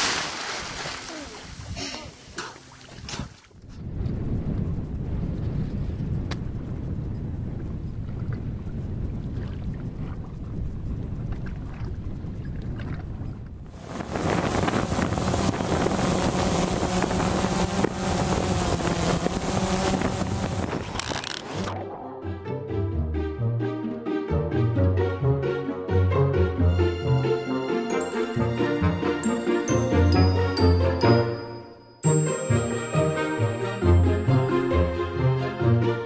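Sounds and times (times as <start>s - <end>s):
wind noise on microphone: 3.0s - 21.7s
motor drone: 13.7s - 21.7s.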